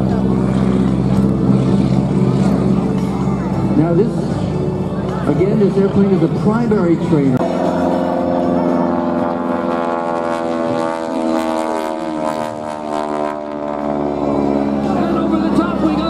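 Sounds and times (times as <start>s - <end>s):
propeller plane engine droning: 0.0s - 16.0s.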